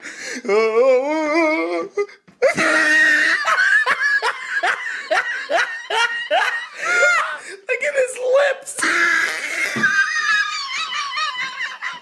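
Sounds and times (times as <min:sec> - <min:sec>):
woman laughing: 0:02.4 - 0:07.4, 0:09.6 - 0:12.0.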